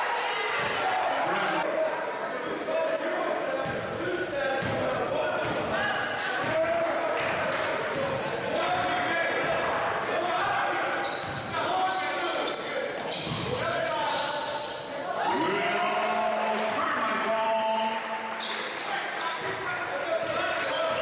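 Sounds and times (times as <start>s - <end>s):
voices echoing in a gym: 0.0s - 21.0s.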